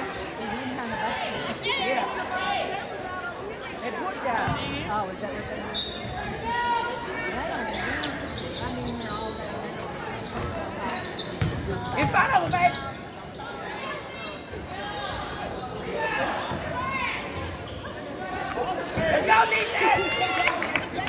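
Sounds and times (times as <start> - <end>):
shouts and chatter: 0.0 - 21.0.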